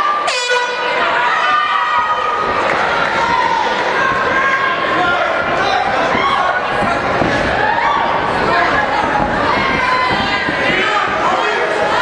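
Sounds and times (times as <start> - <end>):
crowd voices: 0.0 - 12.0
air horn blast: 0.2 - 1.0.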